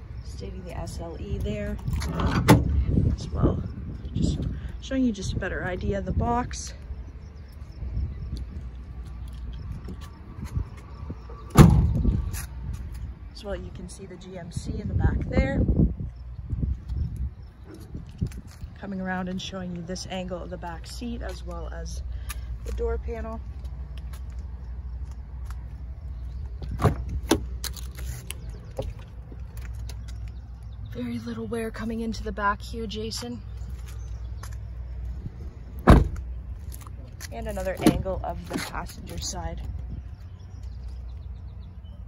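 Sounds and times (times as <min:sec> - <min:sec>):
steady low rumble: 0:00.0 - 0:42.0
truck door latch clicks: 0:11.5 - 0:12.2, 0:35.8 - 0:36.2
loud short thump: 0:35.8 - 0:36.2.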